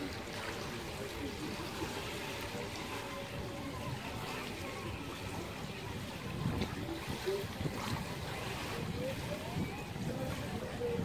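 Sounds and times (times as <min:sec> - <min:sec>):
faint voices: 0:00.0 - 0:11.0
pool water sloshing: 0:00.0 - 0:11.0.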